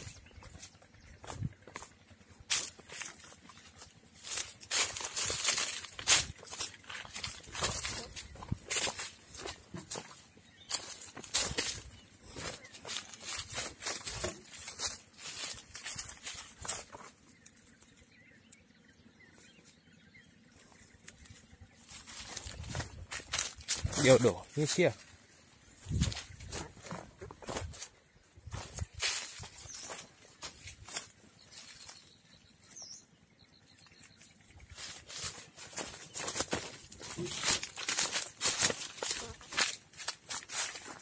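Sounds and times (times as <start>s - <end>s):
footsteps crunching through dry leaves: 0.0s - 17.9s, 20.4s - 33.0s, 33.8s - 41.0s.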